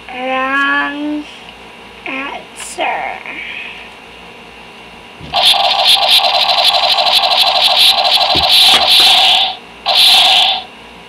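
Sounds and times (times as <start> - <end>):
electronic toy gun firing: 5.3 - 10.7.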